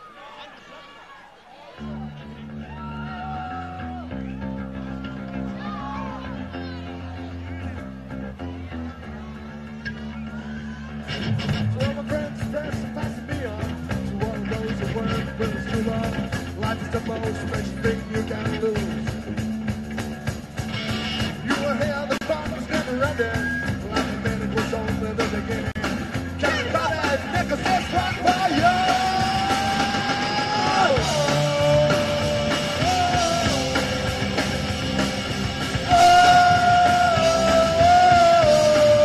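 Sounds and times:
drums: 0:00.0 - 0:39.0
electric guitar chords: 0:02.0 - 0:39.0
person singing: 0:21.4 - 0:39.0.

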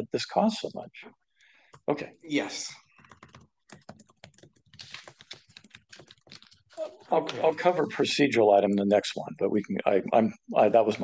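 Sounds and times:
laptop keyboard typing: 0:02.9 - 0:06.8.

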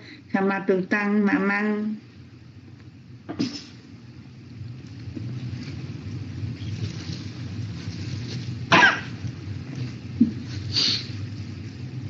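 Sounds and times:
steady low hum: 0:00.0 - 0:12.0
person coughing: 0:03.3 - 0:03.8.

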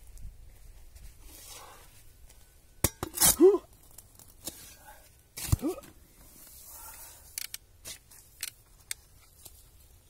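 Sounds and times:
spade chopping into dirt: 0:05.4 - 0:05.9.

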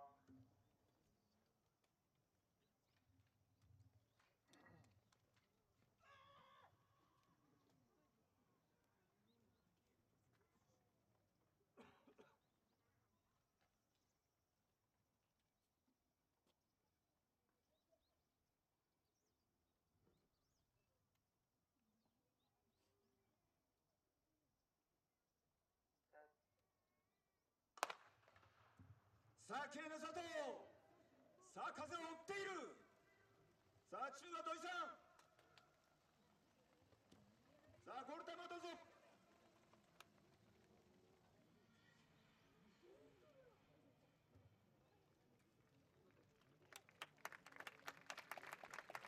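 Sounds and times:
starter's gun crack: 0:27.8 - 0:28.6.

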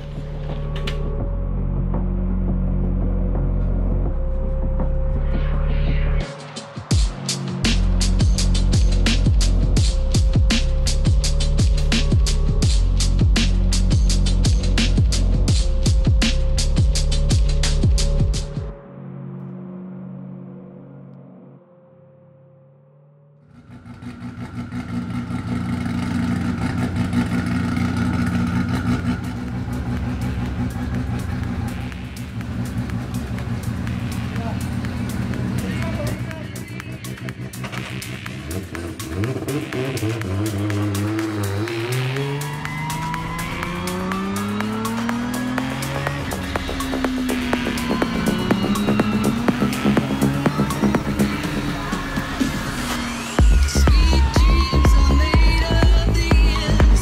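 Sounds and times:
background music with a steady beat: 0:00.0 - 0:19.7, 0:26.9 - 0:57.0
race car engine revving: 0:23.5 - 0:57.0.

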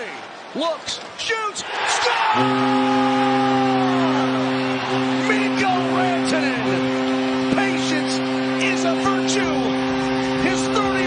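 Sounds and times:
crowd cheering: 0:01.3 - 0:11.0
arena goal horn blaring: 0:02.3 - 0:11.0.

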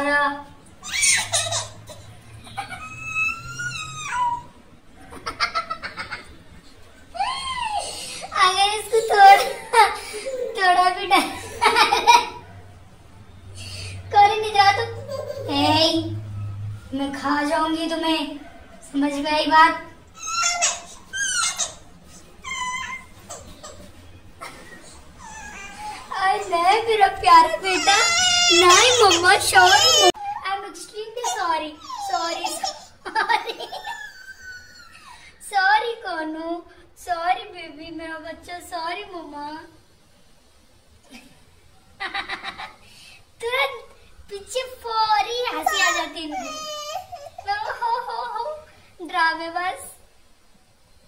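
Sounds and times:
toddler squealing and whimpering: 0:00.8 - 0:04.6, 0:07.2 - 0:08.3, 0:20.2 - 0:23.9, 0:25.2 - 0:26.5, 0:27.4 - 0:30.5, 0:31.2 - 0:33.0, 0:33.7 - 0:35.3, 0:45.5 - 0:47.8
child laughing: 0:00.9 - 0:06.4, 0:07.1 - 0:12.5, 0:14.5 - 0:15.8, 0:20.2 - 0:30.5, 0:31.1 - 0:35.2, 0:45.4 - 0:48.7.

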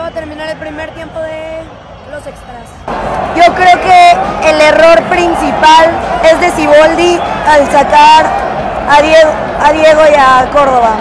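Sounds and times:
stadium crowd: 0:00.0 - 0:11.0
woman talking: 0:03.4 - 0:08.3, 0:08.9 - 0:11.0.

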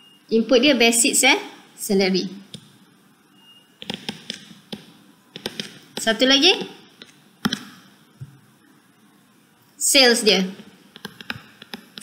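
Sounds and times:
stylus tapping on tablet screen: 0:03.8 - 0:08.4, 0:10.5 - 0:12.0.

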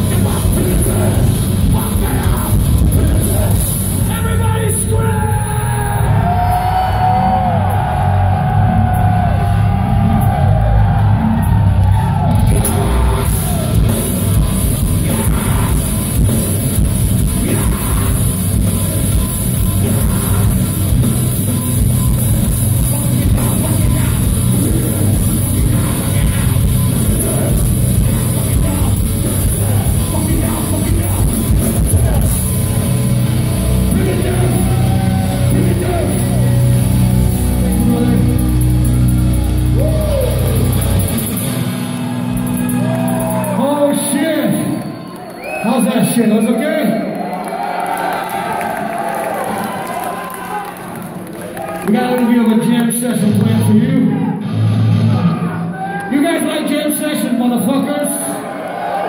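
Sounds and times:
heavy metal band playing live: 0:00.0 - 0:44.7, 0:52.5 - 0:58.0.

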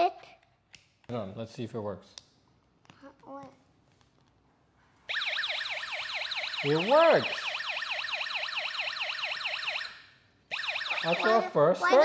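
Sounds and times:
electronic siren tone: 0:05.1 - 0:11.6.

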